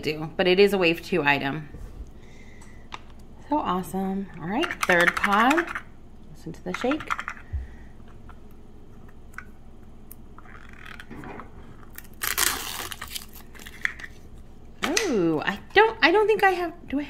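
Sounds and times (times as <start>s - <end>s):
sticker seal tearing: 11.9s - 13.4s.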